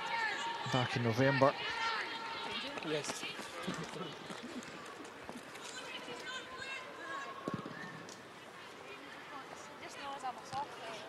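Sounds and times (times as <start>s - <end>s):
players shouting: 0.0s - 4.3s.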